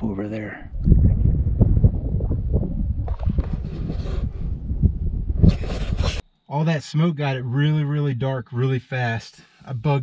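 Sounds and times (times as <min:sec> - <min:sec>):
wind buffeting microphone: 0:00.0 - 0:06.2.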